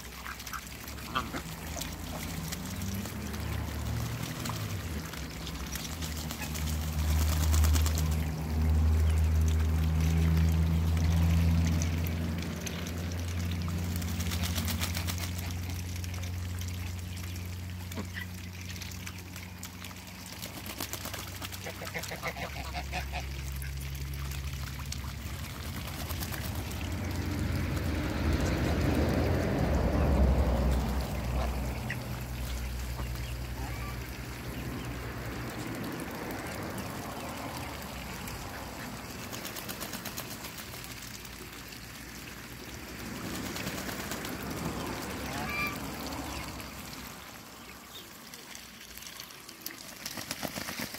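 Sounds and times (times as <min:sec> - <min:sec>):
ducks quacking: 0:00.1 - 0:02.7, 0:21.4 - 0:23.8
geese honking: 0:21.6 - 0:23.3.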